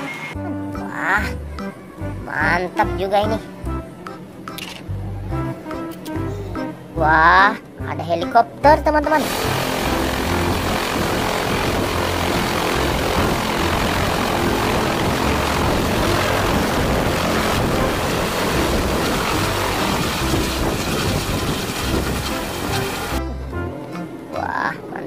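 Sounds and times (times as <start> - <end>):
helicopter rotor and turbine: 9.2 - 23.2.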